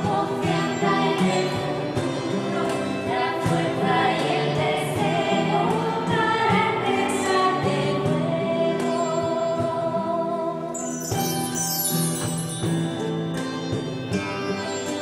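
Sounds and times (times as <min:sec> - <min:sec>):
choir singing a hymn: 0:00.0 - 0:10.8
instrumental accompaniment: 0:10.7 - 0:15.0.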